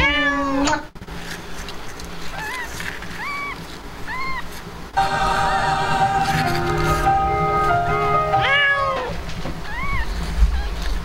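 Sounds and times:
cat meowing loudly: 0.0s - 0.6s, 2.3s - 4.5s, 8.4s - 10.8s
kittens mewing: 2.2s - 4.7s, 8.4s - 11.0s
music with long held notes: 5.0s - 8.9s.

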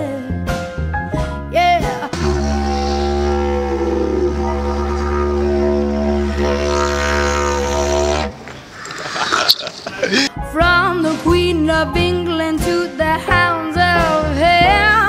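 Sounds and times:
didgeridoo drone: 2.1s - 8.4s
person laughing: 8.8s - 10.3s.

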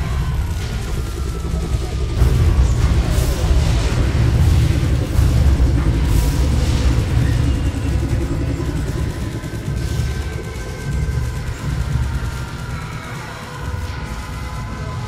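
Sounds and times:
loud deep rumble: 0.0s - 15.0s.

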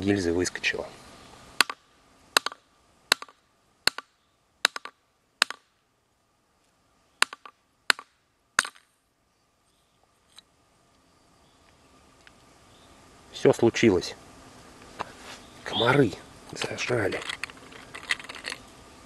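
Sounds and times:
short rattle: 16.5s - 18.7s.

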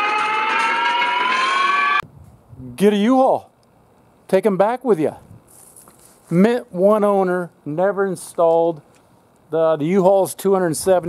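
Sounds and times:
high-pitched rising tone: 0.0s - 2.0s.

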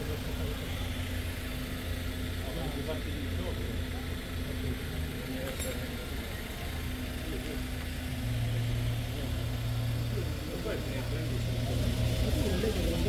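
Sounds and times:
faint voices: 0.0s - 13.0s
vehicle engine idling: 0.0s - 13.0s.

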